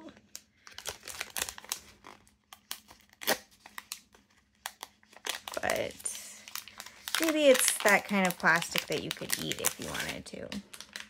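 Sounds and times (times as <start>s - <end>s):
plastic packaging crinkling: 0.1s - 11.0s.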